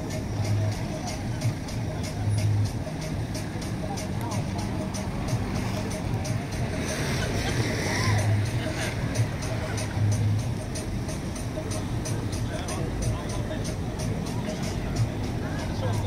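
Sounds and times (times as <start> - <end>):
music with steady beat: 0.0 - 16.0
people's voices: 0.0 - 16.0.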